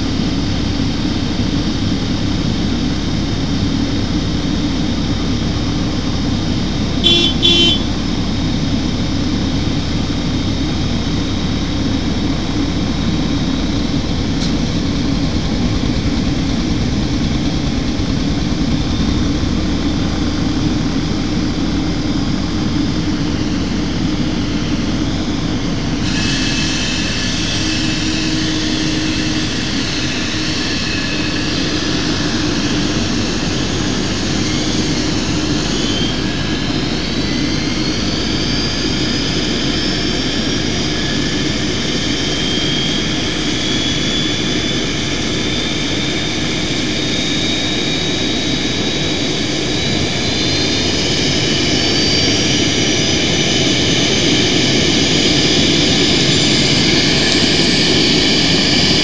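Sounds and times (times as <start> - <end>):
engine whine rising in pitch: 0.0 - 59.0
jet engines running: 0.0 - 59.0.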